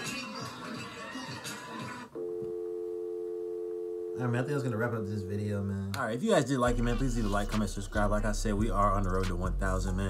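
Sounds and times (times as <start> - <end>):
mixed audio: 4.1 - 10.0.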